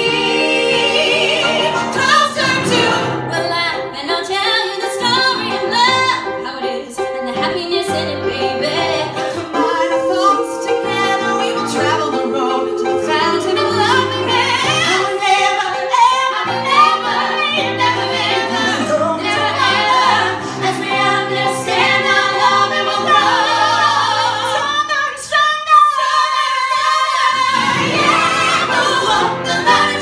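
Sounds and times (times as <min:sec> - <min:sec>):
piano accompaniment: 0:00.0 - 0:25.2, 0:27.2 - 0:30.0
women singing in harmony: 0:00.0 - 0:30.0.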